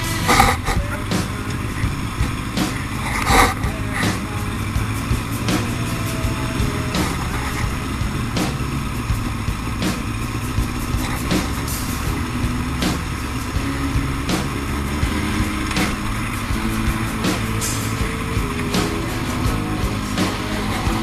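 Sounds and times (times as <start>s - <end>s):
motorcycle engine at low revs: 0.0s - 21.0s.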